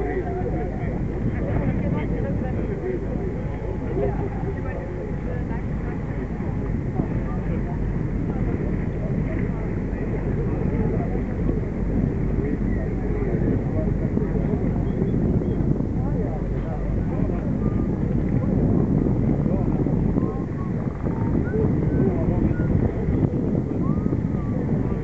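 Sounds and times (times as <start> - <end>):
motor rumble: 0.0 - 25.0
muffled indistinct voices: 0.0 - 25.0.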